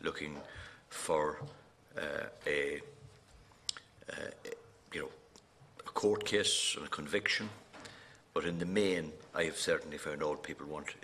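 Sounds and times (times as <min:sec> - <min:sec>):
man speaking hesitantly: 0:00.0 - 0:03.0, 0:04.0 - 0:07.6.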